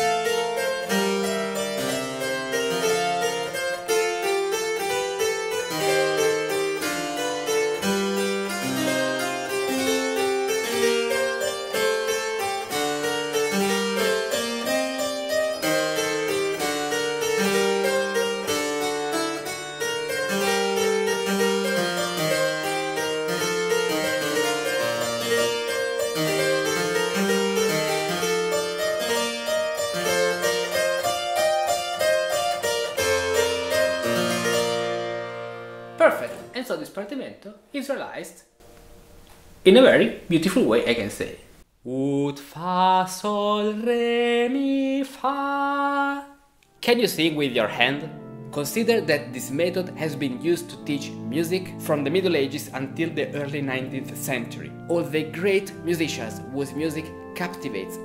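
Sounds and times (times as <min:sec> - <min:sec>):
harpsichord playing chords: 0:00.0 - 0:37.2, 0:46.8 - 0:58.0.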